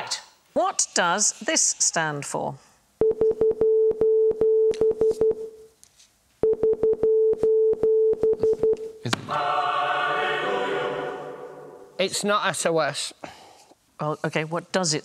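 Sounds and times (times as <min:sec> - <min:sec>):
morse code beeps: 0:03.0 - 0:05.6, 0:06.4 - 0:08.8
held choir chord: 0:09.2 - 0:12.0.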